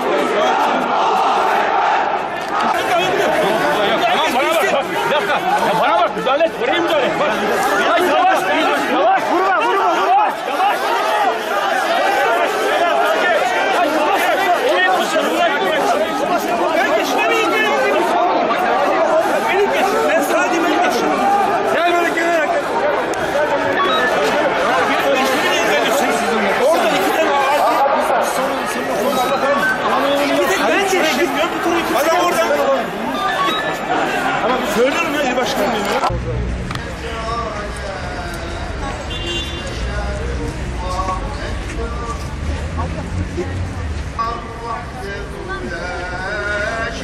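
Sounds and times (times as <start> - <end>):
many men talking agitatedly: 0.0 - 47.0.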